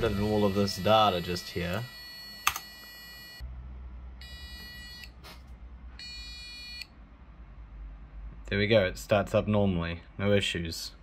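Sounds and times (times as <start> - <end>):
electronic buzzer beeping: 0.0 - 3.4, 4.2 - 5.2, 6.0 - 6.9.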